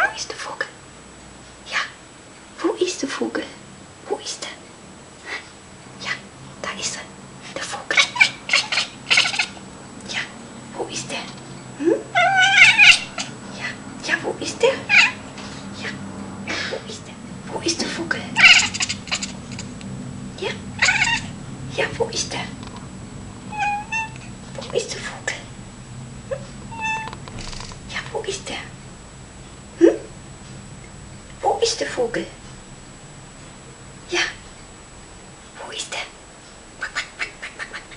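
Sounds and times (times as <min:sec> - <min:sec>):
cat chirping: 0:08.0 - 0:09.6, 0:12.1 - 0:13.4, 0:14.8 - 0:15.2, 0:18.4 - 0:19.4, 0:20.8 - 0:21.3, 0:23.5 - 0:24.3, 0:26.3 - 0:27.6
cat meowing: 0:12.1 - 0:13.3, 0:14.9 - 0:15.2, 0:20.8 - 0:21.3, 0:23.5 - 0:24.3, 0:26.7 - 0:27.2.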